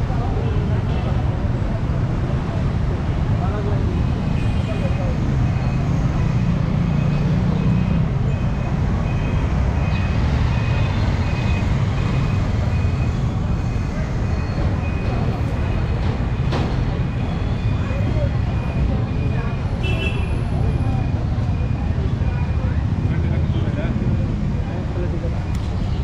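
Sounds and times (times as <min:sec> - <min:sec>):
motorcycle and van engines rumbling: 0:00.0 - 0:26.0.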